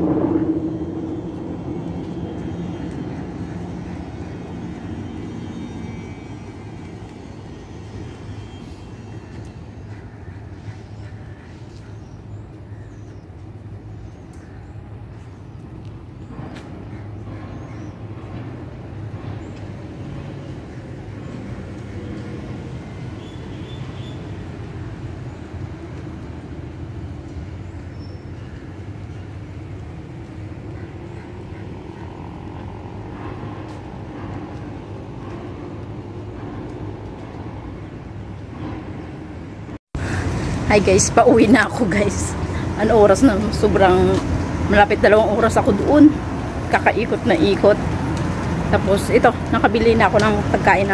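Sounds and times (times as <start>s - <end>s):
road traffic rumble: 0.0s - 50.9s
vehicles passing: 0.0s - 50.9s.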